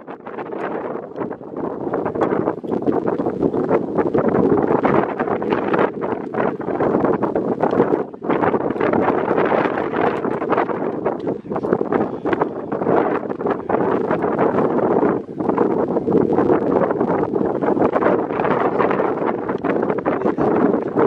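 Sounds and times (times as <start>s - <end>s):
wind gusting over microphone: 0.0s - 21.0s.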